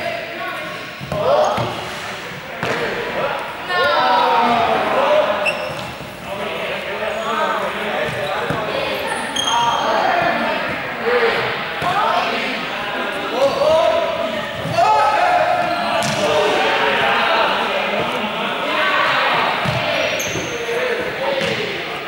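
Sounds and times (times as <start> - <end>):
young people shouting: 3.1 - 5.5, 8.6 - 21.8.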